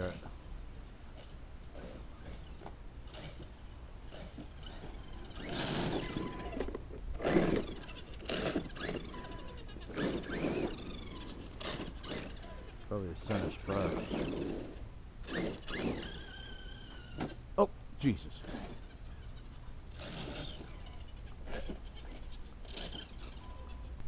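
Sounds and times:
grinding gears: 1.2 - 17.4, 18.3 - 24.0
electric motor whine: 1.7 - 17.4, 18.4 - 24.0.

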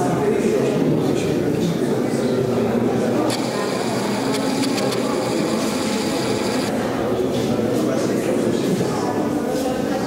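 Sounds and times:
crowd murmuring in a hall: 0.0 - 10.0.

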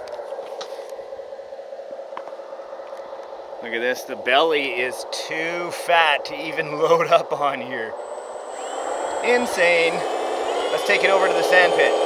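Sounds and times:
electric motor whine: 8.0 - 12.0.

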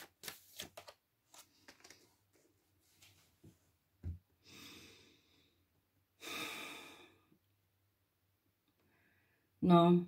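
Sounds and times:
woman breathing close to microphone: 4.4 - 7.4.

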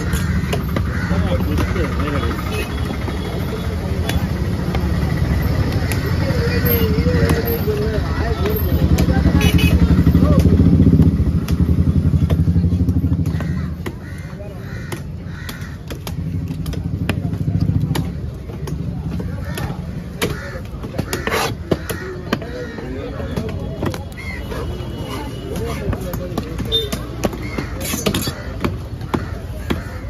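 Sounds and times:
knife chopping on wooden block: 14.9 - 22.5, 23.3 - 30.0.

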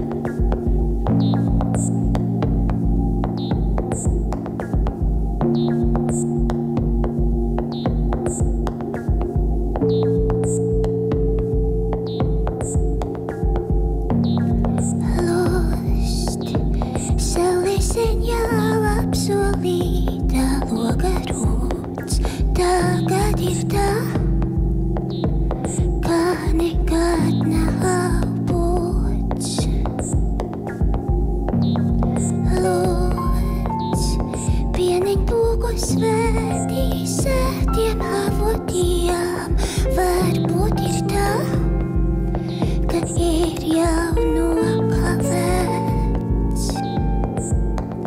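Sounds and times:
low pulsing bass: 0.0 - 39.1, 39.8 - 48.0
synthesizer chord: 0.0 - 48.0.

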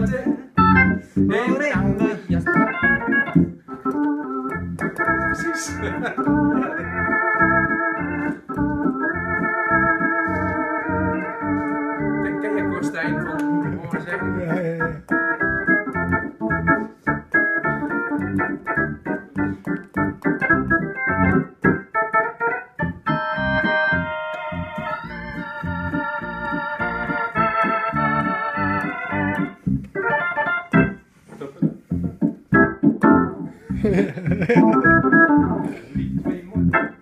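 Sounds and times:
organ chords through rotating speaker: 0.0 - 37.0.

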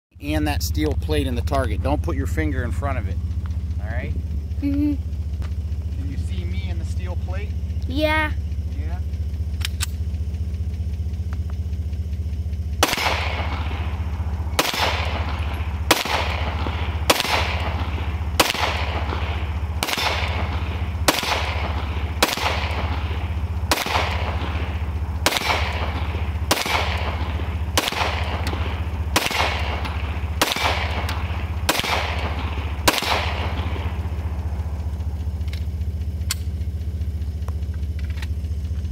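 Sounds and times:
steady low hum: 0.1 - 38.9
handgun shots with echo: 12.8 - 14.0, 14.6 - 34.0.

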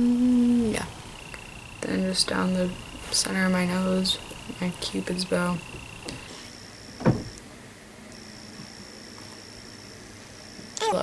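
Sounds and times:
faint high-pitched whine: 0.0 - 11.0
dull low thump: 7.0 - 7.4.

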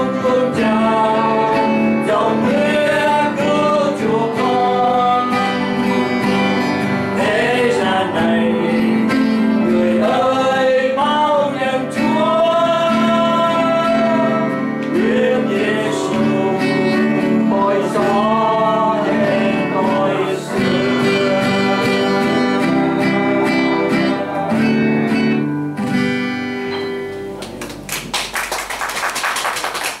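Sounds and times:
man singing: 0.0 - 24.9
acoustic guitar: 0.0 - 28.3
audience applause: 27.4 - 30.0.

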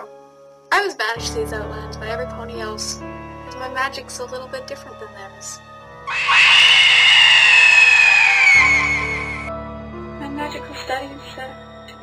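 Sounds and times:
background music: 0.0 - 12.0
high-pitched scream sliding down: 6.1 - 9.5.

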